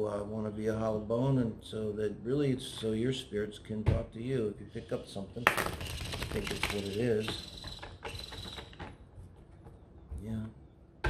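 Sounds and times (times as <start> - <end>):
playing cards being shuffled: 5.5 - 7.3.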